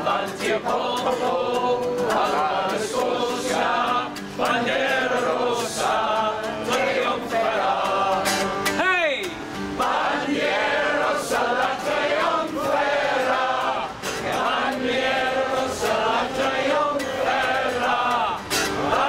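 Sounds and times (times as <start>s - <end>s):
men singing in unison: 0.0s - 8.8s, 9.7s - 19.0s
strummed acoustic guitar: 0.0s - 19.0s.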